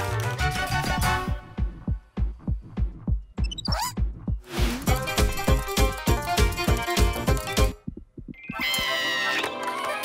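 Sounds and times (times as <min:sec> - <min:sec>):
cartoon heartbeat thumps: 0:01.2 - 0:05.6, 0:07.7 - 0:08.9.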